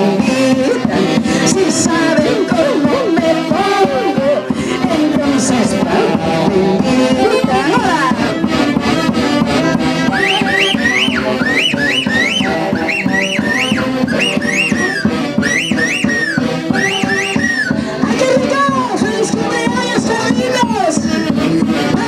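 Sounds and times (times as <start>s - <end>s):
folk dance band playing: 0.0s - 22.0s
high swooping notes: 9.4s - 18.6s.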